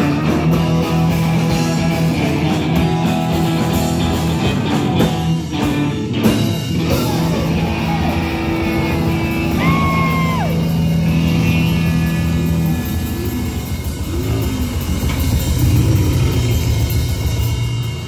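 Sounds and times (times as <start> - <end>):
live rock band playing: 0.0 - 18.0.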